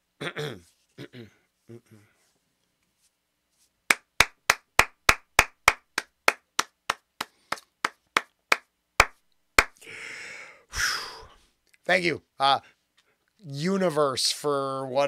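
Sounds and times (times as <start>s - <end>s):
person clapping: 3.9s - 9.8s.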